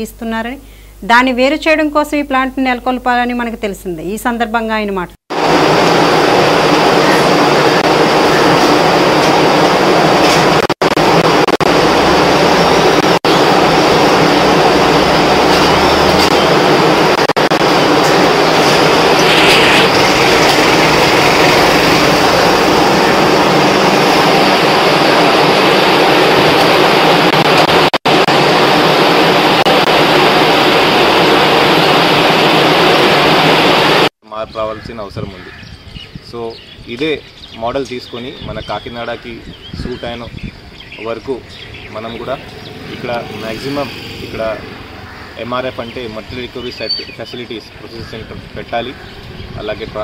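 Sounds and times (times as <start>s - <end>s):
conveyor machine running: 5.3s - 34.1s.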